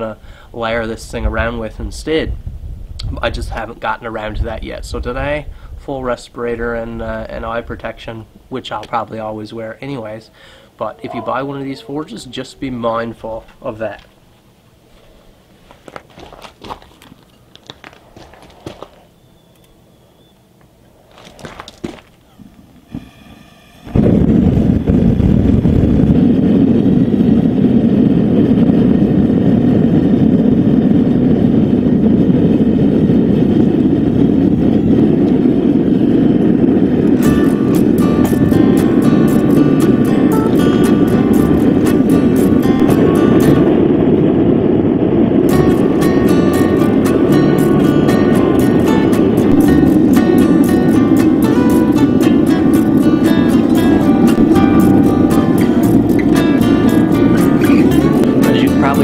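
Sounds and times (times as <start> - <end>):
gas forge burner roaring: 20.5 - 59.0
background music with beat: 37.2 - 43.7, 45.5 - 59.0.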